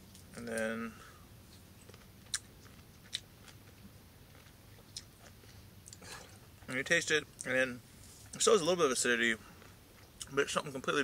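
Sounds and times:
man chewing fruit: 0.0 - 6.7, 9.4 - 10.4.

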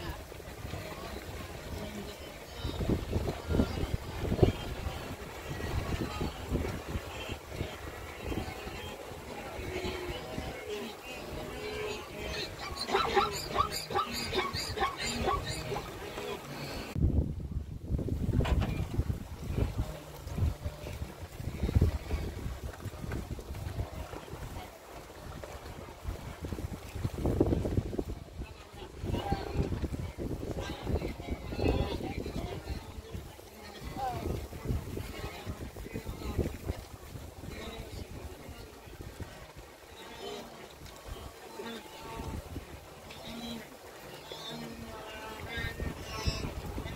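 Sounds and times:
water splashing: 0.0 - 17.0, 18.1 - 46.9
wind on microphone: 0.0 - 40.1, 40.8 - 43.3, 44.7 - 46.9
animal calls: 12.3 - 16.9.

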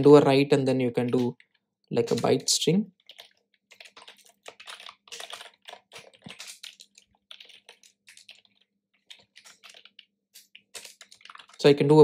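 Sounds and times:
typing on computer keyboard: 0.9 - 11.7.

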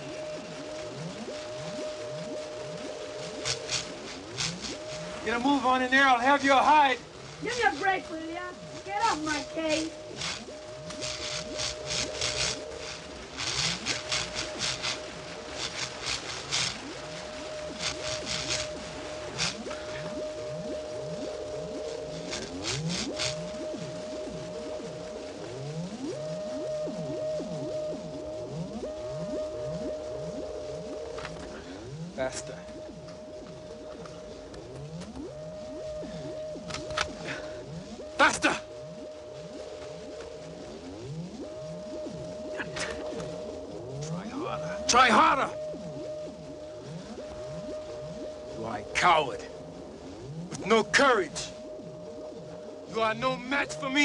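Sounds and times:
crackling electrical zaps: 0.0 - 54.0
high synth drone: 0.0 - 54.0
rising synth sweeps: 0.0 - 54.0.

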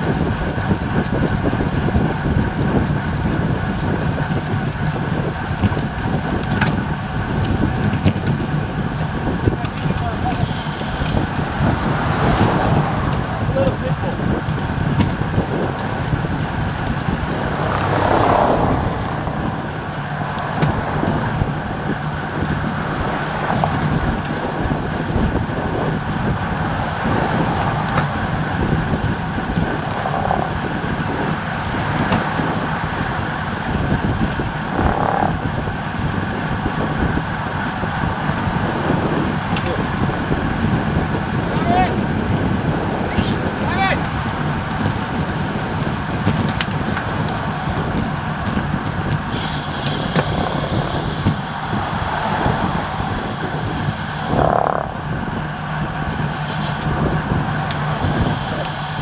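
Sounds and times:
bike tyre and road noise: 0.0 - 59.0
wind rushing over microphone: 0.0 - 59.0.

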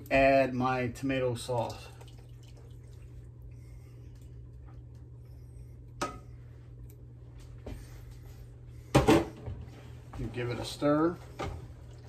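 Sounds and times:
steady low hum: 0.0 - 12.0
sauce dripping into a pot: 1.6 - 5.2.

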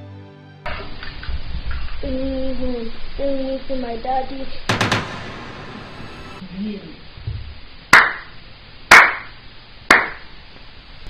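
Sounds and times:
person clapping slowly: 7.9 - 8.3, 8.9 - 9.3, 9.9 - 10.2.

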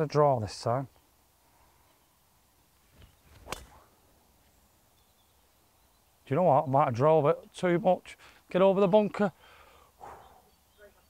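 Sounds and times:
golf club swish: 2.8 - 4.1
golf club striking ball: 3.0 - 3.9.

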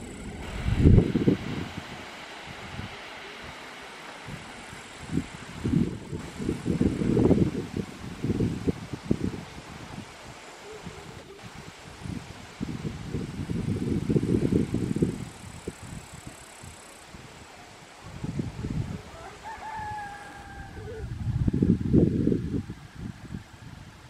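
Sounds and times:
wind buffeting microphone: 0.0 - 3.6, 4.2 - 24.0
rooster crowing: 19.1 - 21.2.

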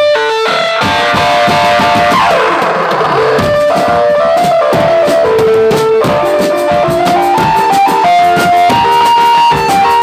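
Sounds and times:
amplified guitar-like melody: 0.0 - 10.0
drums beaten in busy rhythm: 0.0 - 10.0.

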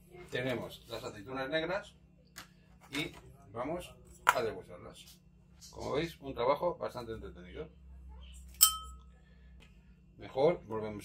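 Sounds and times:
metal pot clink: 8.6 - 9.1.

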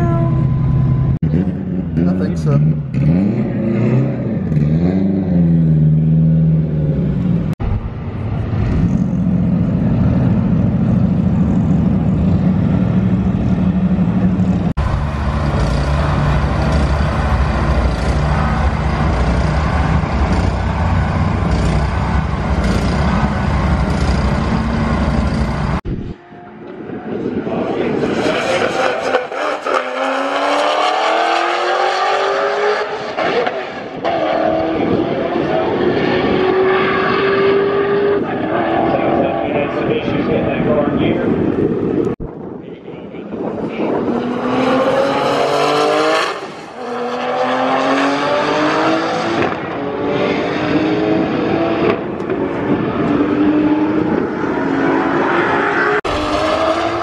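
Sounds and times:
car engines running: 0.0 - 26.0
drag car accelerating hard: 1.2 - 26.0, 27.2 - 42.2, 43.4 - 57.0.

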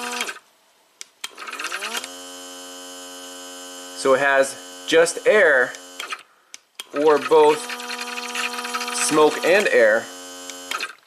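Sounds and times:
electric air pump humming: 0.0 - 0.4, 1.3 - 11.0.

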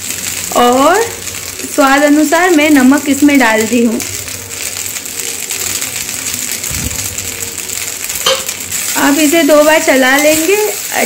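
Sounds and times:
rice sizzling in a pan: 0.0 - 11.0.

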